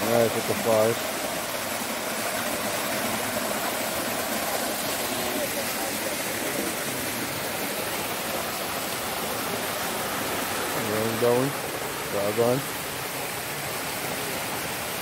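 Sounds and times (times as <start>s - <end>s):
waterfall splashing into pool: 0.0s - 15.0s.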